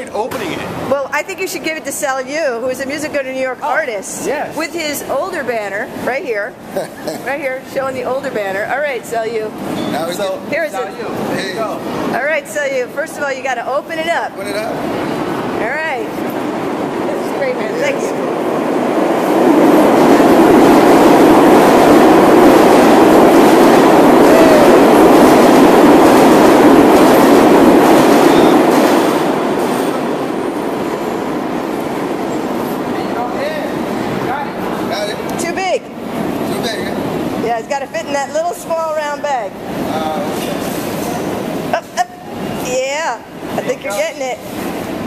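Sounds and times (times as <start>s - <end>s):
station background noise: 0.0s - 45.0s
subway train rumbling past: 0.0s - 45.0s.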